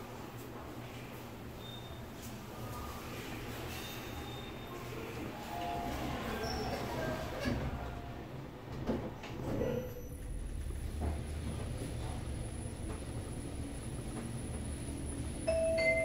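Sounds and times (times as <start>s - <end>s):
elevator running hum: 0.0s - 16.0s
elevator doors clunking shut: 5.6s - 14.6s
two-tone arrival chime: 15.5s - 16.0s.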